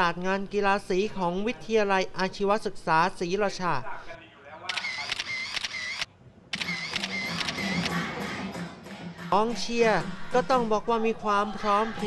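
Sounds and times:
crowd cheering and chanting: 7.5s - 12.0s.

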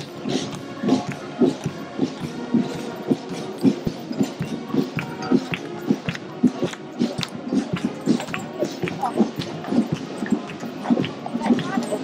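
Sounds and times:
horse hooves on asphalt: 0.0s - 12.0s
people talking: 0.0s - 12.0s.

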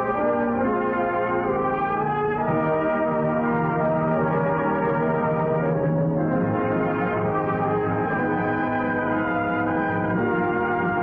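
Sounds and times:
orchestral brass chords: 0.0s - 11.0s.

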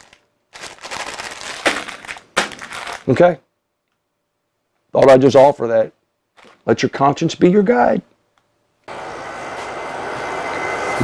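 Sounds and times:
plastic bag crinkling: 0.0s - 3.4s, 6.3s - 6.7s.

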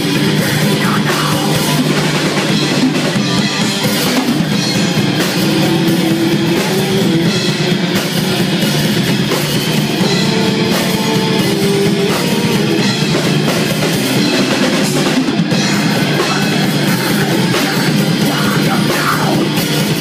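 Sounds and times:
distorted guitars: 0.0s - 20.0s
drum kit: 0.0s - 20.0s.

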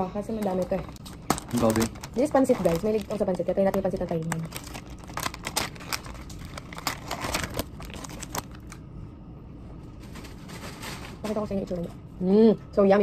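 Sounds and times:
plastic packet crinkling: 0.4s - 8.8s.

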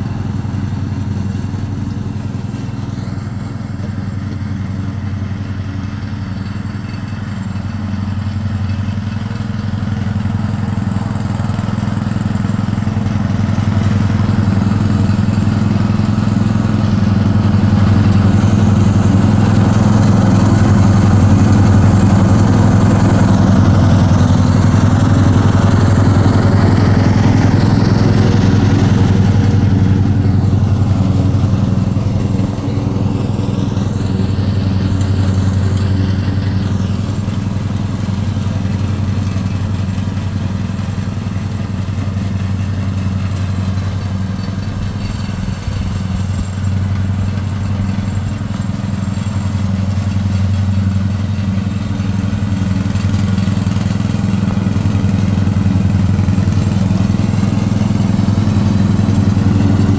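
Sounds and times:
lawn mower engine running: 0.0s - 59.9s.

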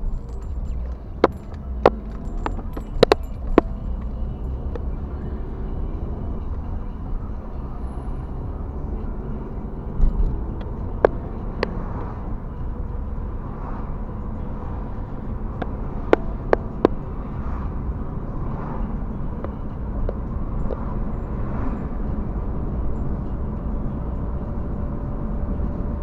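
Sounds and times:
car road and engine rumble: 0.0s - 26.0s.

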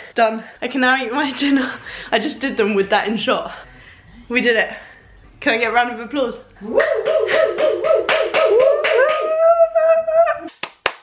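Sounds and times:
hand clapping: 6.8s - 9.5s, 10.4s - 11.0s
woman laughing: 8.8s - 10.5s.

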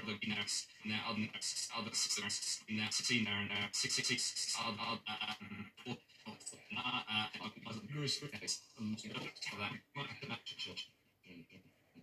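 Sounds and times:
stuttering glitched male voice: 0.0s - 11.6s.

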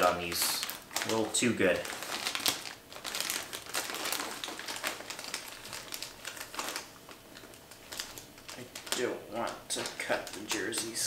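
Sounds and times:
plastic mailer bag crinkling: 0.0s - 11.0s.

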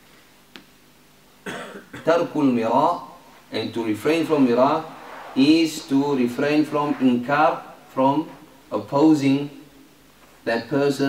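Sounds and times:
small click: 0.5s - 0.8s
man coughing: 1.4s - 2.2s.

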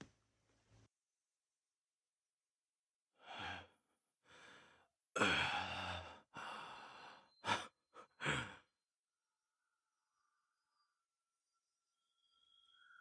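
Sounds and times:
man breathing heavily with gasps: 3.2s - 8.7s.

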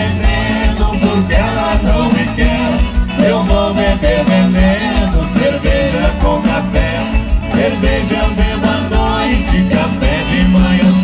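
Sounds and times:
guitars: 0.0s - 11.0s
person singing: 0.0s - 11.0s
piano accordion: 0.0s - 11.0s
steady drum beat: 0.0s - 11.0s.

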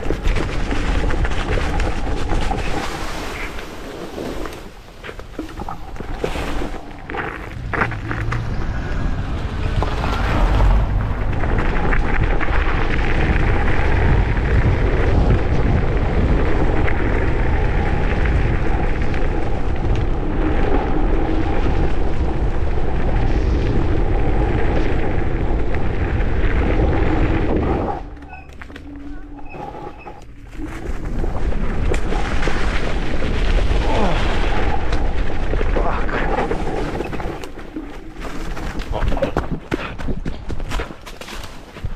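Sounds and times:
wind buffeting microphone: 0.0s - 41.1s
scooter tyres rumbling on gravel: 0.0s - 41.9s.

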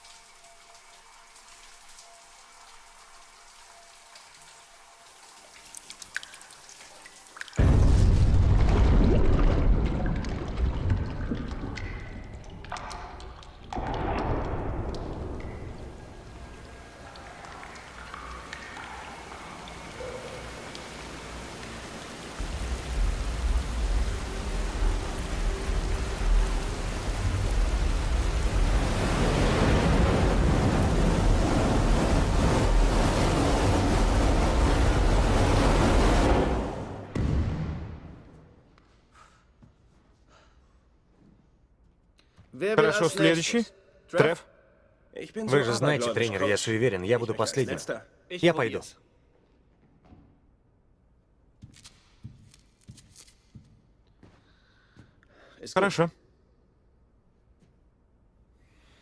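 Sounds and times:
water spraying like a shower: 0.0s - 7.6s, 14.8s - 36.8s.

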